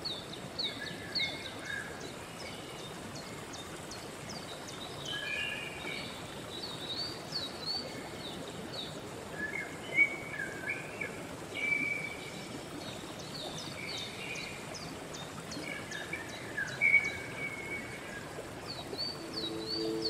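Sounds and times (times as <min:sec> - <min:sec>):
flowing stream rushing: 0:00.0 - 0:20.0
songbirds chirping and whistling: 0:15.9 - 0:20.0.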